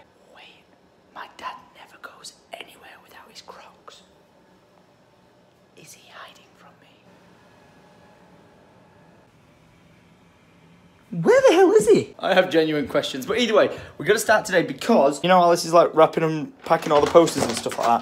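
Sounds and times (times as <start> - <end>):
man whispering: 0.0 - 4.2, 5.8 - 7.1
faint steady hum: 0.0 - 16.6.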